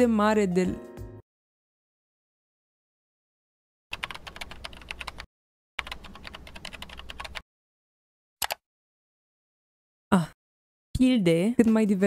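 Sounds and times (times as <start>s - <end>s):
fast keyboard typing: 3.9s - 7.4s.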